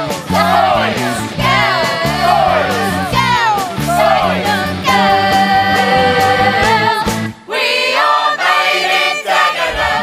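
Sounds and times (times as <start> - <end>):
band playing: 0.0 - 7.5
group of voices singing: 0.0 - 10.0.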